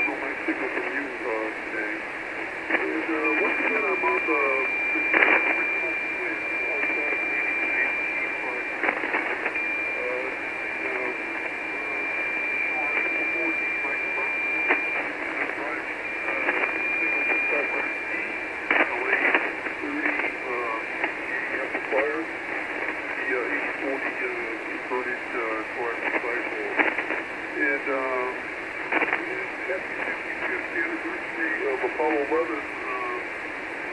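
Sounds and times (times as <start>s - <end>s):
hissy radio band noise: 0.0s - 33.9s
weak speech over radio: 0.0s - 33.9s.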